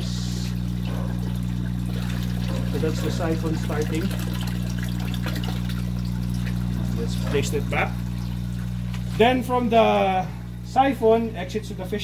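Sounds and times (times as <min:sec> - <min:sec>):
water pouring and splashing: 0:00.0 - 0:09.4.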